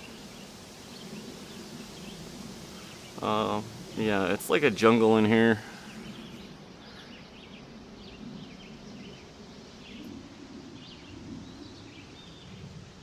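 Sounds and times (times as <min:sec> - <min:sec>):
steady background hiss: 0:00.0 - 0:13.0
bird chirps: 0:05.7 - 0:10.1.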